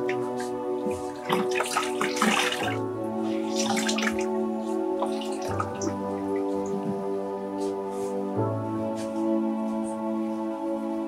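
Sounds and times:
water splashing and dripping in bucket: 0.0 - 4.4, 5.0 - 7.0
soft background music: 0.0 - 11.0.

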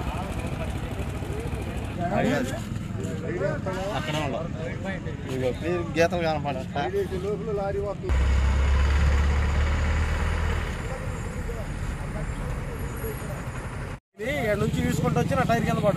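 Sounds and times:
roadside hum: 0.0 - 15.9
heavy vehicle engine rumbling: 8.0 - 14.0
speech: 14.2 - 15.9.

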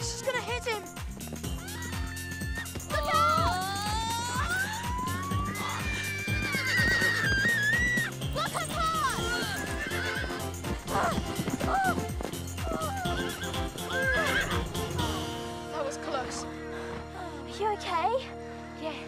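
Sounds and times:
background music with beat: 0.8 - 15.6
horses whinnying: 1.5 - 14.9.

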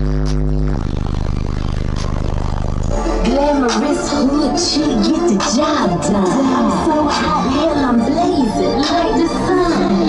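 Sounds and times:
loud subwoofer bass tone: 0.0 - 10.0
music with singing: 0.0 - 10.0.

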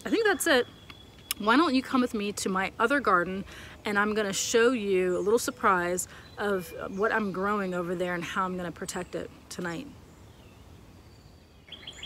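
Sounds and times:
faint bird chirp: 0.0 - 2.4, 3.6 - 12.0.

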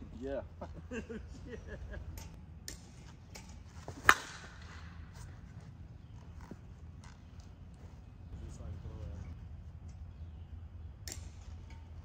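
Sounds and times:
bat hitting softball: 2.1 - 5.0.

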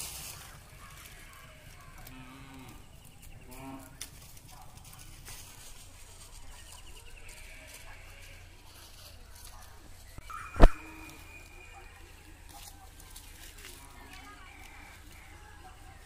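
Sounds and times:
farm animal calls: 0.0 - 16.0
rustling in dry leaves: 0.0 - 16.0.

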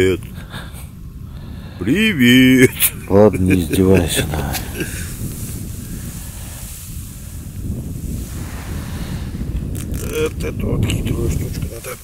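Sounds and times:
man's voice: 0.0 - 0.4, 1.8 - 5.1, 10.0 - 12.0
wind buffeting microphone: 0.0 - 12.0.

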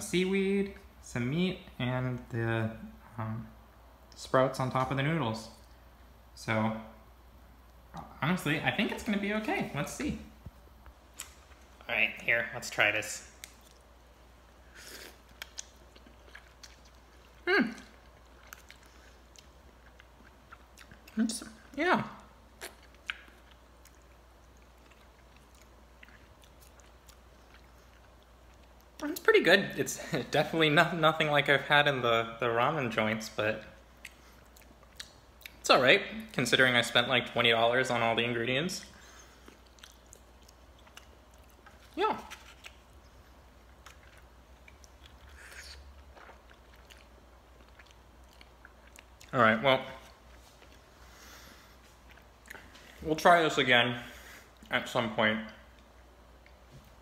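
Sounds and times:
low steady hum: 0.0 - 57.0
chewing noodles: 14.7 - 21.8, 22.5 - 29.0, 39.0 - 49.3.

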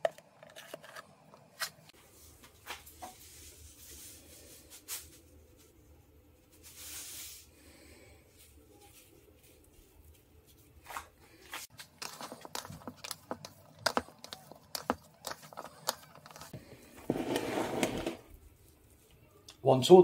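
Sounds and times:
hands kneading minced meat: 8.2 - 16.6, 18.3 - 20.0.

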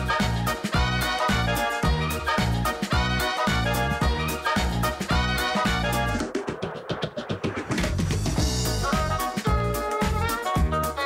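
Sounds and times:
upbeat swing band music: 0.0 - 6.6, 7.5 - 11.0
drum roll: 0.1 - 10.8.

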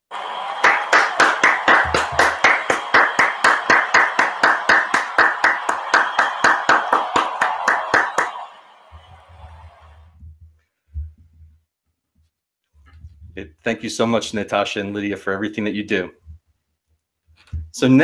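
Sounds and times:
hand clapping: 0.2 - 9.9.

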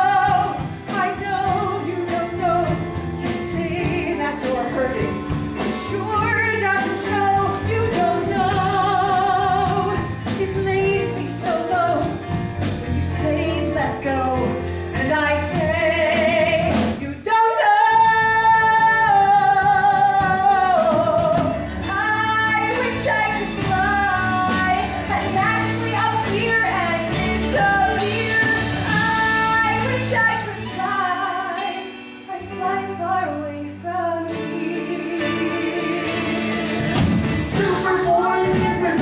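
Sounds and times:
instrumental accompaniment: 0.0 - 39.0
person singing with vibrato: 13.2 - 39.0.

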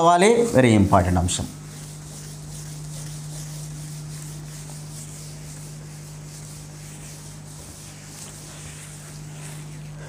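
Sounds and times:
whiteboard being wiped: 0.4 - 10.0.

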